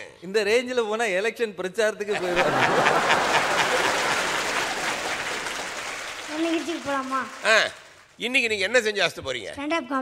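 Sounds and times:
audience applauding: 2.2 - 8.2.

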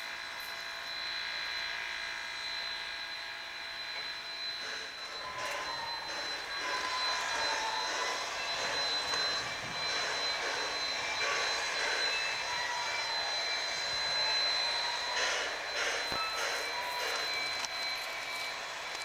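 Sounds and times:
thin steady high tone: 0.0 - 19.0
faint wavering tones: 0.4 - 19.0
steam hissing roar: 4.4 - 17.6.

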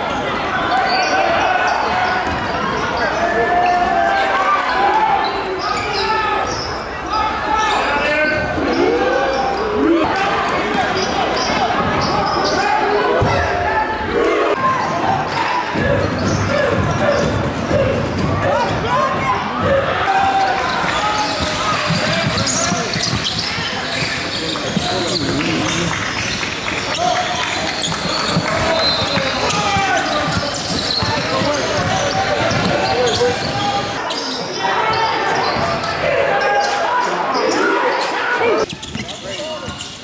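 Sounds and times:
shouts and chatter: 0.0 - 40.0.

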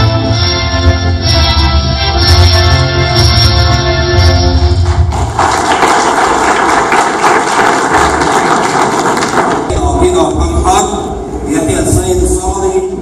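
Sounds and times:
national anthem music: 0.0 - 7.4
crowd applauding: 4.8 - 9.8.

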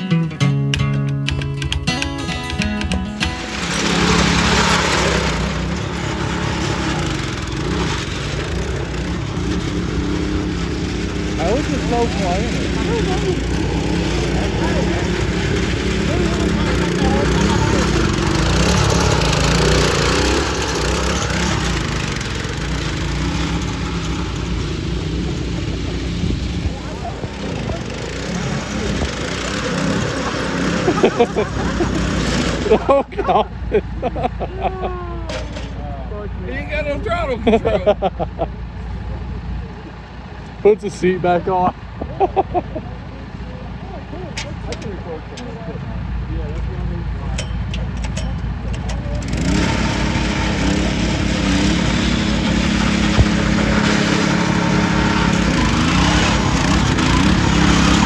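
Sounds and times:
music: 0.0 - 3.5
riding lawn mower engine: 0.0 - 58.0
voices: 10.9 - 58.0.

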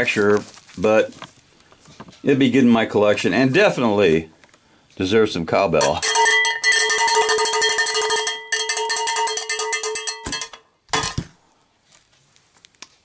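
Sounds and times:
cowbell struck rapidly: 5.8 - 10.6.

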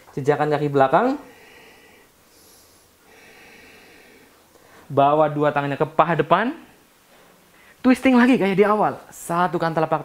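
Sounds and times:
man breathing softly: 1.2 - 4.9, 7.1 - 7.8.

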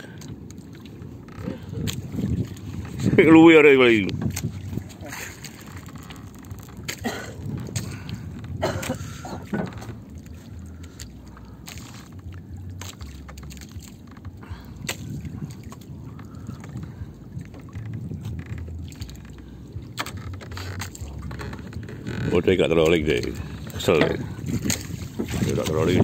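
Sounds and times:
low steady rumble: 0.0 - 26.0
water sloshing around boat: 0.0 - 26.0.

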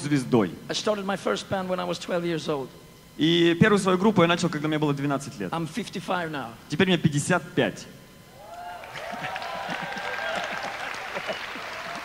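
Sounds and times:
audience applauding: 8.5 - 12.0
voices calling out: 8.6 - 12.0.

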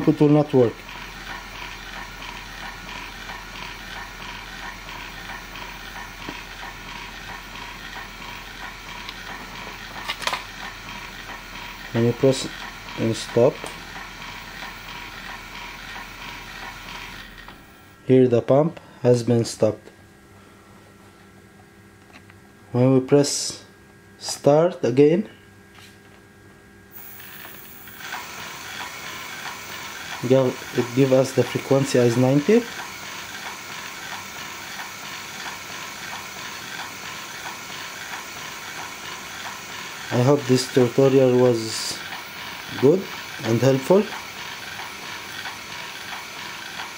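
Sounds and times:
dosing pump whirring: 0.0 - 18.0, 26.9 - 46.9.

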